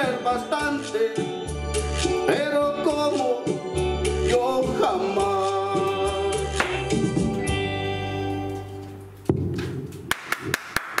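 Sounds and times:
hands clapping in rhythm: 0:06.5 - 0:07.0, 0:10.0 - 0:11.0.

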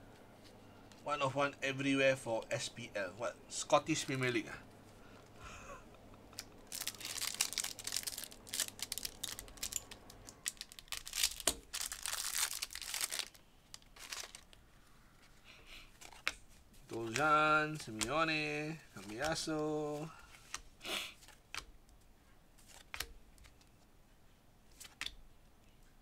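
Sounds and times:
card pack wrapper tearing: 0:06.3 - 0:14.6
cards being handled: 0:06.3 - 0:14.6, 0:15.2 - 0:22.0, 0:22.6 - 0:23.9, 0:24.7 - 0:25.2.

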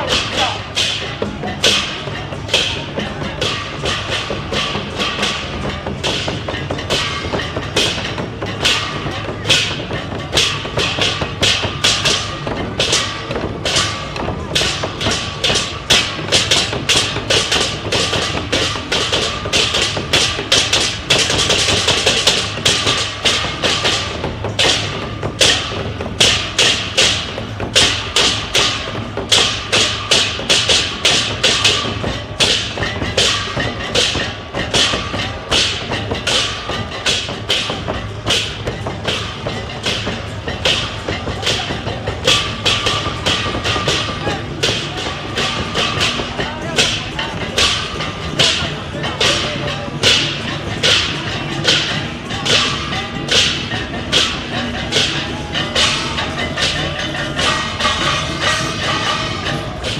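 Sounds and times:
large drum and percussion rhythm: 0:00.0 - 0:59.9.

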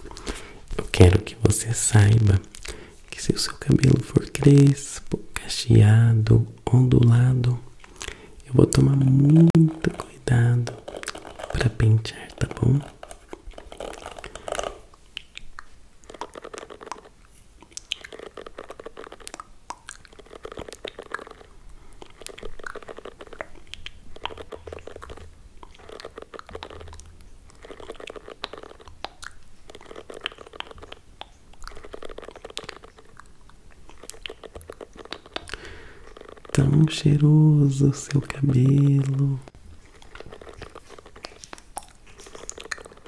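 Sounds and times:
hairbrush scratching microphone: 0:08.7 - 0:14.9, 0:39.9 - 0:43.0.

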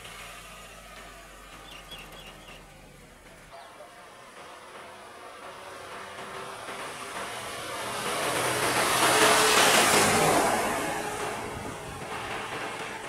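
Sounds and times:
vehicle driving past: 0:00.0 - 0:13.0.

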